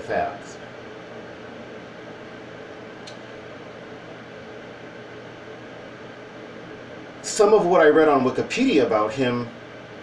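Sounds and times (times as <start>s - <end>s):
faint hum: 0.0s - 10.0s
faint click: 3.0s - 3.3s.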